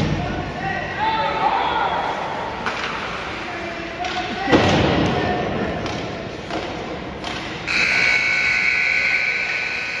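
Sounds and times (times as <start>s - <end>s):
scoreboard buzzer: 7.7s - 10.0s.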